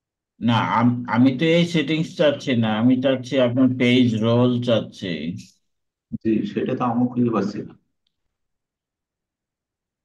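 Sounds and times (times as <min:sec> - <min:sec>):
man speaking: 0:00.4 - 0:07.8.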